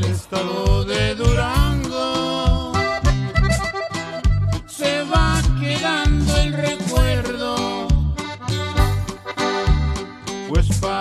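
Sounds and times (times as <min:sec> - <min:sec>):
accordion melody: 0:00.0 - 0:11.0
steady bass beat: 0:00.0 - 0:11.0.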